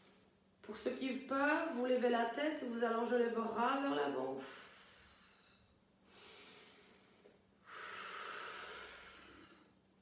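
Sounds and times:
woman breathing through mouth: 4.4s - 9.8s.

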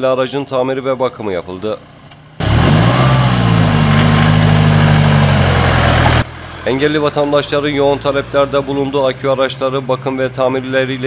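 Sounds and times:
van engine running: 0.4s - 11.0s
loud rushing noise: 2.4s - 6.3s.

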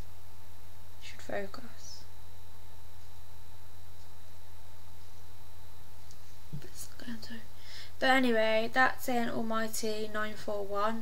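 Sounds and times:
low electrical hum: 0.0s - 11.0s
person whispering: 6.6s - 7.5s.

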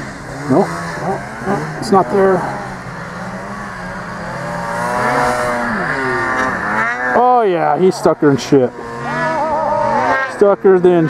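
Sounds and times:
snowmobile engine revving: 0.0s - 11.0s.

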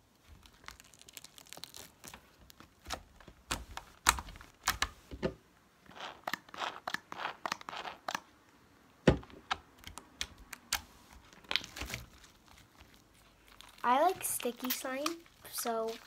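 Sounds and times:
slime popping and crackling: 0.3s - 4.9s, 9.5s - 16.0s.

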